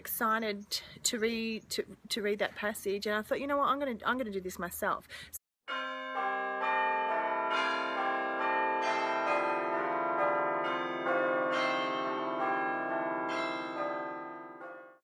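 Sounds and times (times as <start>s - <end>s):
chiming bells music: 5.7s - 15.0s.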